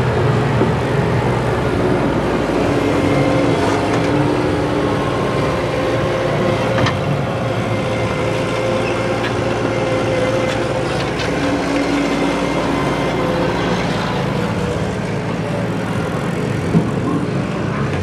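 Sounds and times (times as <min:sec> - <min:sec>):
loader engine under load: 0:00.0 - 0:18.0.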